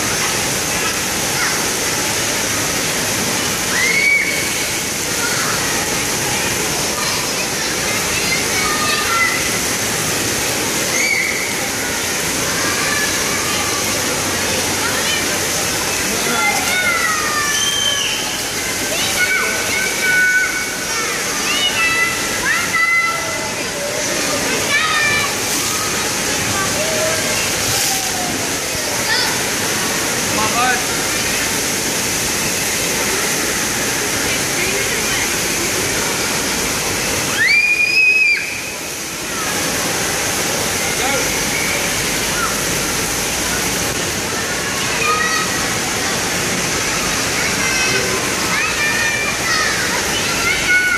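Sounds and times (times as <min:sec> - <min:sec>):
children's voices and calls: 0:00.0 - 0:50.9
fountains spraying and splashing: 0:00.0 - 0:50.9.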